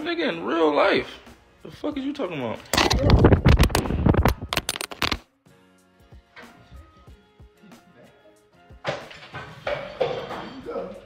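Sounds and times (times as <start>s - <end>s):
faint background music: 0.0s - 11.0s
phone clattering and rubbing: 2.8s - 5.2s.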